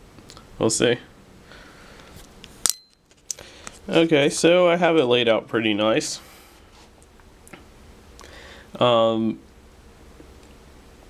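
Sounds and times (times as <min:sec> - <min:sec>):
sharp click with metallic ring: 0:02.6 - 0:03.0.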